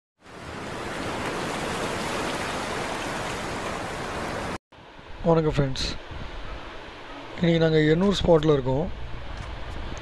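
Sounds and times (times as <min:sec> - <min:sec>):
rushing sea water: 0:00.2 - 0:04.6.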